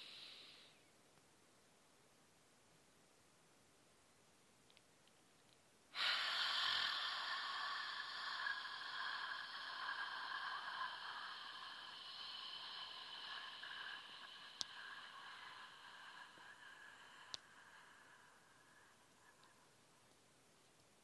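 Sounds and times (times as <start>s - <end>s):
slow breath exhale: 0.0s - 0.9s, 5.9s - 19.8s.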